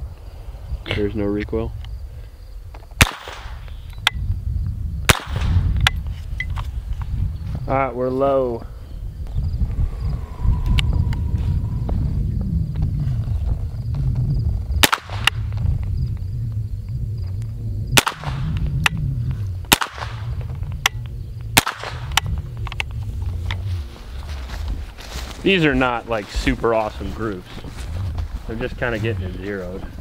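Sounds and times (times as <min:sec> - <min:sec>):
small pistol gunshots: 0:03.0 - 0:03.7, 0:05.1 - 0:05.6, 0:14.8 - 0:15.4, 0:18.0 - 0:18.5, 0:19.7 - 0:20.3, 0:21.6 - 0:22.2
low rumble: 0:03.6 - 0:07.8, 0:08.6 - 0:30.0.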